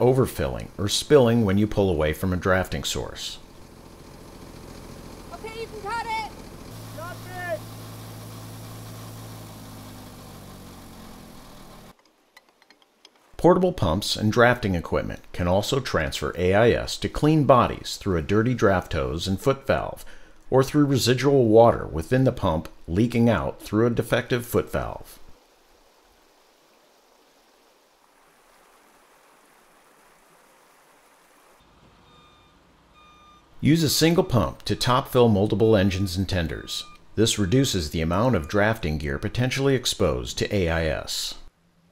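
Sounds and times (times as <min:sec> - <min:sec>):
fire engine motor running: 0:00.0 - 0:12.0, 0:31.6 - 0:39.6
person shouting: 0:05.3 - 0:07.7
creek running over rocks: 0:24.3 - 0:31.7.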